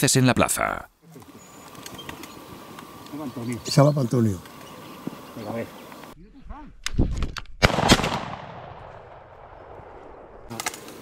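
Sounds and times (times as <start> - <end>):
gunshot echo: 7.6 - 10.8.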